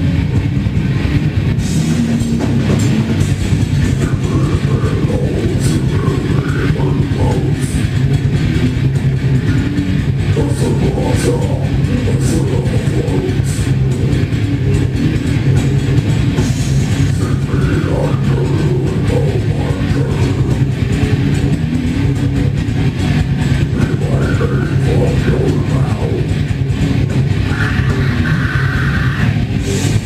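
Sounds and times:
bass guitar: 0.0s - 30.0s
distorted electric guitars: 0.0s - 30.0s
drums: 0.0s - 30.0s.

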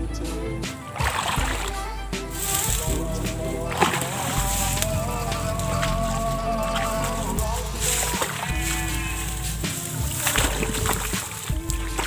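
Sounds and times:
background music: 0.0s - 12.0s
water splash: 1.0s - 12.0s.

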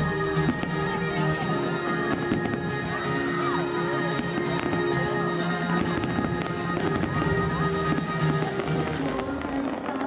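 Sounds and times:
firework bangs: 0.0s - 10.0s
music over loudspeakers: 0.0s - 10.0s.

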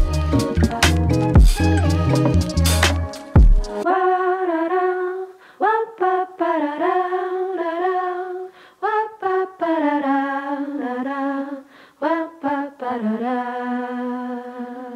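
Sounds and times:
voice humming wordless melody: 0.0s - 2.8s
lo-fi hip-hop beat: 0.0s - 3.8s.

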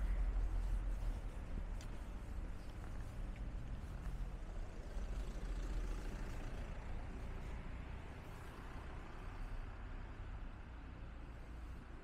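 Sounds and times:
vehicle passing: 0.0s - 10.1s.

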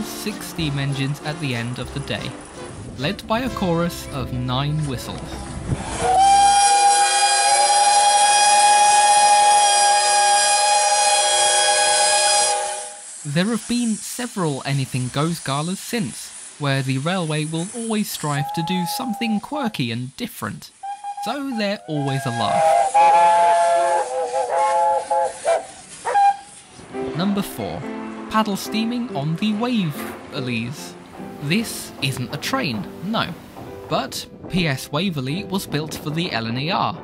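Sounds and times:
steam locomotive whistles chord: 5.8s - 13.3s, 20.8s - 28.2s.

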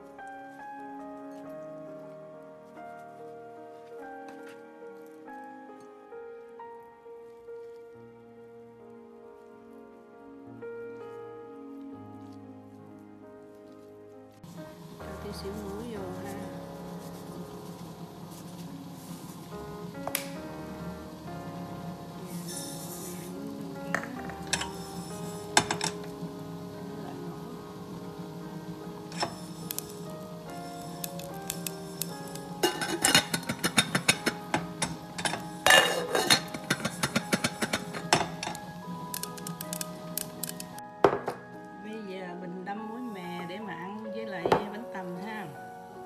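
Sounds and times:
background music: 0.0s - 46.0s
seeds popping in a covered pot: 14.4s - 41.4s.

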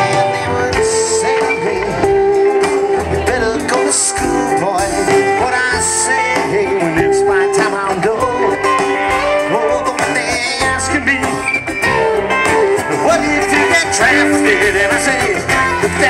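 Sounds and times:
electric guitar: 0.0s - 16.0s
electric keyboard: 0.0s - 16.0s
rock band playing: 0.0s - 16.0s.

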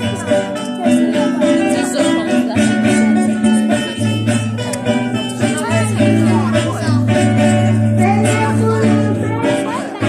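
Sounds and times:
acoustic guitars playing together: 0.0s - 10.0s.

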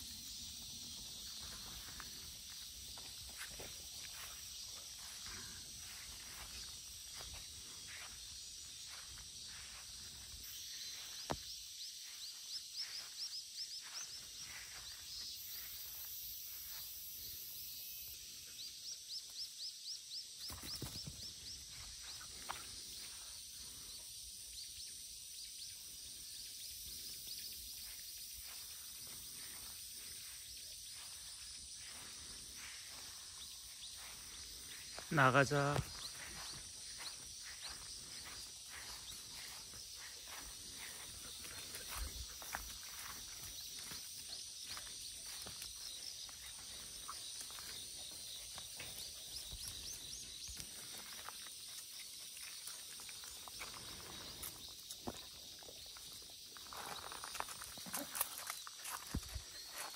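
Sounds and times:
high-pitched insect drone: 0.0s - 59.9s.

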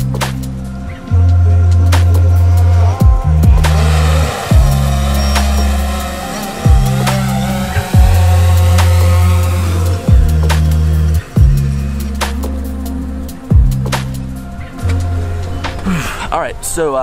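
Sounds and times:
deep bass notes: 0.0s - 15.2s
synth melody: 1.0s - 12.1s.

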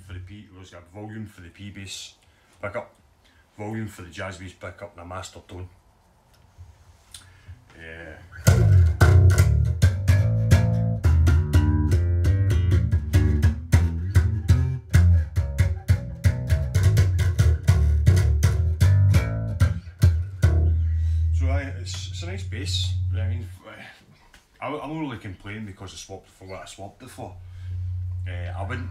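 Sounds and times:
electric bass guitar plucked notes: 8.4s - 23.6s, 27.4s - 28.9s.

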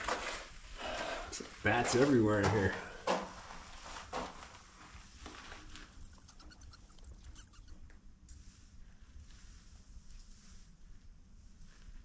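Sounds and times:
bat chittering: 5.0s - 8.0s.

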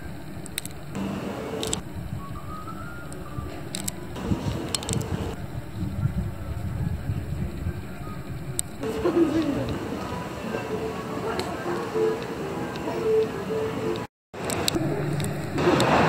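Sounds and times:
low rumble of traffic: 0.0s - 16.0s.

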